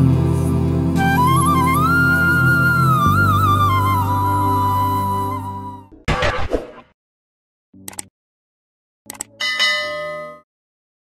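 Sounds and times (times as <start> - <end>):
bright bell ding: 9.4 - 10.5.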